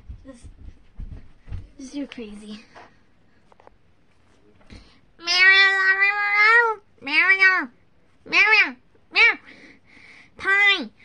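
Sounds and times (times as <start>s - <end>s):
person making meow-like cries: 5.2s - 7.7s.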